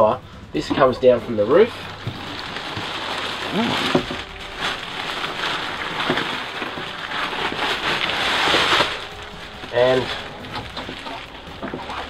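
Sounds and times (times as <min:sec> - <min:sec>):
plastic shower curtain rustling: 0:01.4 - 0:12.0.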